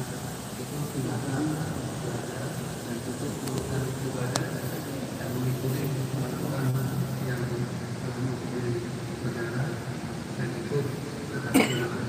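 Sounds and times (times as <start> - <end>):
muffled voices: 0.0 - 12.0
steady low hum: 0.0 - 12.0.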